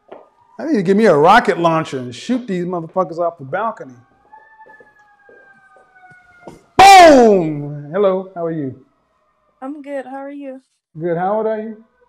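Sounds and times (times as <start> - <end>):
faint fire engine siren: 0.0 - 10.0, 11.0 - 12.0.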